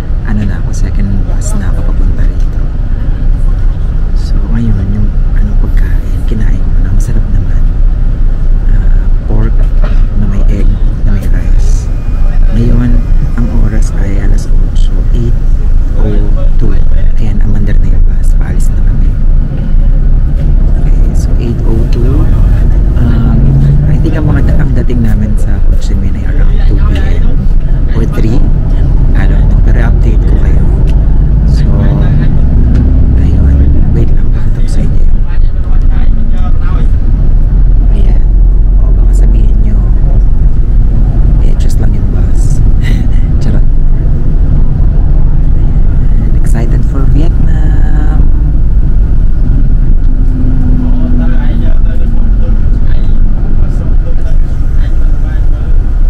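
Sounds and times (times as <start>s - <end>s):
bus rumble from inside: 0.0s - 56.0s
indistinct voices: 0.0s - 56.0s.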